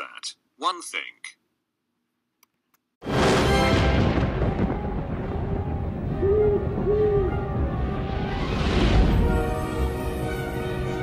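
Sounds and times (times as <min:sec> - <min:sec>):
low rumble: 0:03.1 - 0:10.1
owl hooting: 0:06.2 - 0:07.4.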